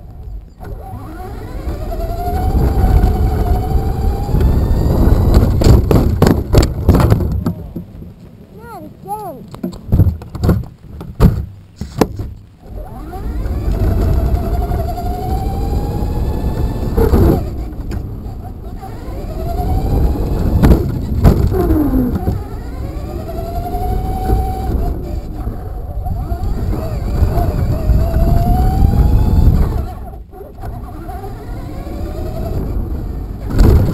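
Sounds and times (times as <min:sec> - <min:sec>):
tyres and chassis rattling: 0:00.0 - 0:08.5, 0:09.6 - 0:33.9
electric motor whine: 0:00.5 - 0:06.4, 0:12.6 - 0:33.9.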